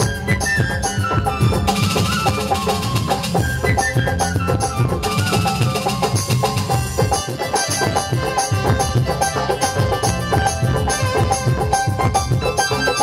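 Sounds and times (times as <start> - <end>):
busy drum rhythm: 0.0 - 13.0
folk band music over loudspeakers: 0.0 - 13.0.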